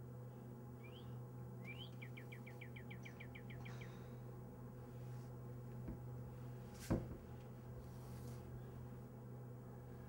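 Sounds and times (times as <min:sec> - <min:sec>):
low hum: 0:00.0 - 0:10.0
bird singing: 0:00.8 - 0:04.0.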